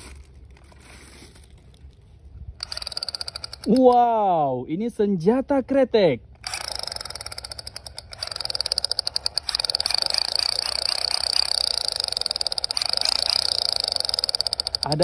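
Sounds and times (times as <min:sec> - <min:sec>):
toy gun rattling clicks: 0:02.6 - 0:04.0, 0:06.4 - 0:15.0.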